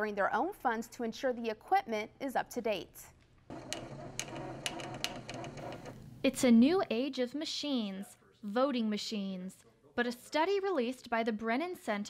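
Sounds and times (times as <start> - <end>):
printer whirring with sharp clicks: 3.5 - 6.0.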